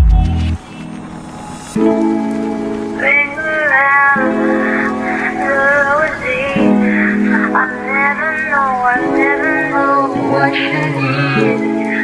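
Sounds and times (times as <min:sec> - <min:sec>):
pitch-bending melody line: 0:01.8 - 0:12.0.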